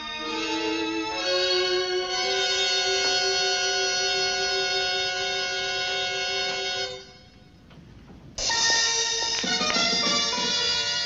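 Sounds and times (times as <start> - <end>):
orchestral music chords: 0.0 - 7.1.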